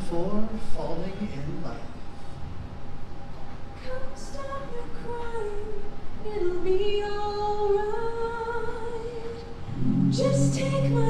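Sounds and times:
lower voices singing harmony: 3.8 - 11.0.

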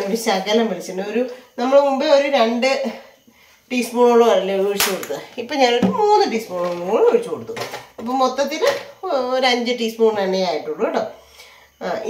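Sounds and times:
woman speaking: 0.0 - 3.0, 3.7 - 11.2, 11.8 - 12.0.

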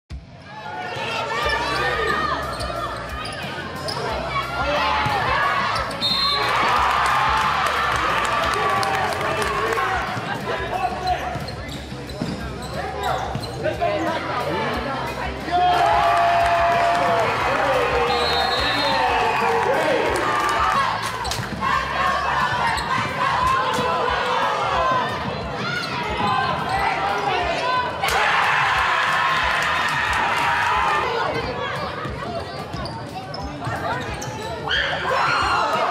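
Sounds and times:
crowd noise: 0.1 - 35.9
sneakers squeaking: 1.4 - 6.6, 9.4 - 14.4, 20.9 - 27.9, 31.2 - 35.9.

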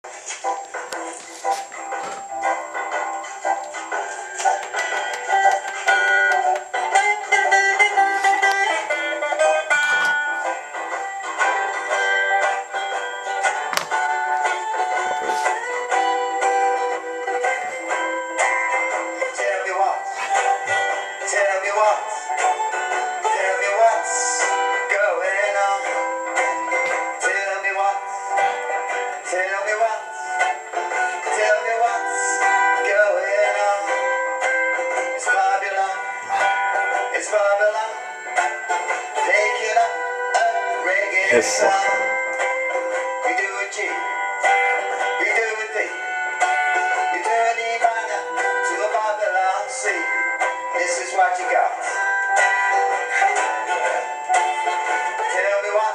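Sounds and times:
acoustic guitar strumming: 0.0 - 55.9
man singing: 14.9 - 16.0, 19.2 - 20.6, 21.2 - 22.5, 23.2 - 26.0, 27.1 - 28.2, 29.2 - 30.1, 31.2 - 34.1, 35.2 - 36.5, 37.1 - 38.1, 39.1 - 42.2, 43.2 - 44.2, 45.0 - 46.0, 47.0 - 52.0, 55.1 - 55.9.

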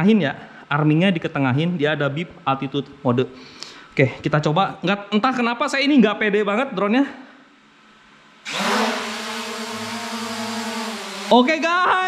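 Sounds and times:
drone motors whining: 8.4 - 11.9.

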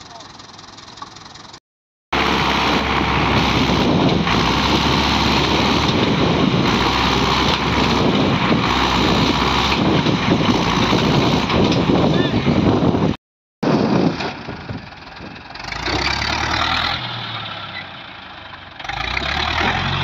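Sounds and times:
tractor diesel engine under load: 0.0 - 20.0.

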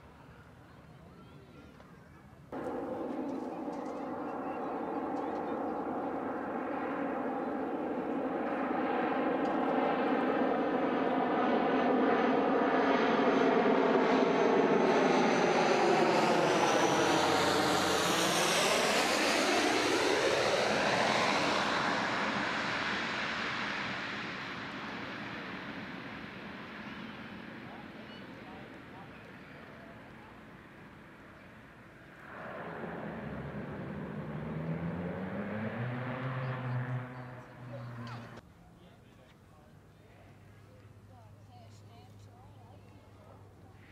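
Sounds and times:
airplane engine and propeller drone: 2.5 - 43.9.

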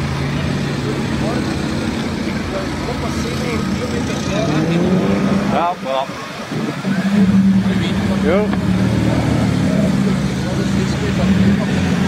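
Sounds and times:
car engine running low: 0.0 - 12.0
people's voices: 0.0 - 12.0.

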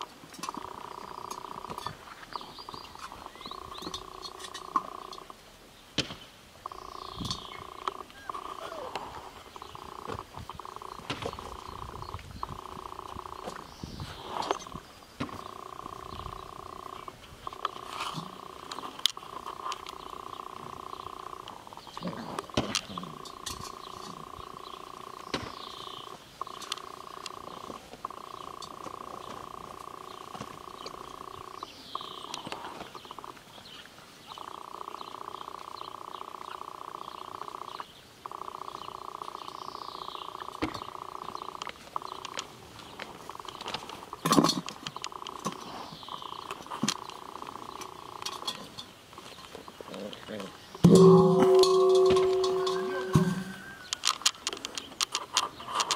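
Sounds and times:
puppies growling: 7.4 - 13.6.

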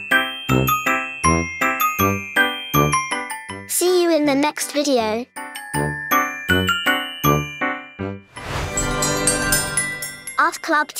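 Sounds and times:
bell-like jingle notes: 0.0 - 10.9.

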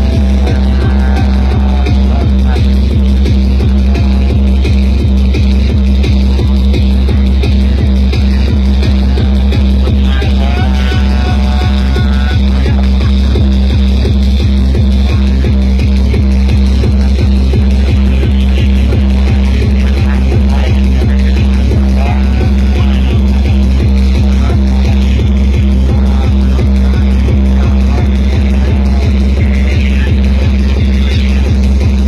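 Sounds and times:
tekno dance music: 0.0 - 32.0.

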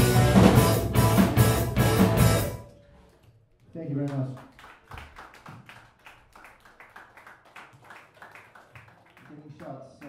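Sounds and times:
sparse applause: 4.1 - 10.0.

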